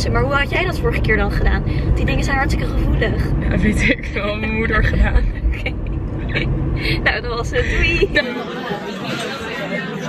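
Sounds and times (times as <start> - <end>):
car interior rumble: 0.0 - 10.0
murmur of diners' voices: 7.0 - 10.0.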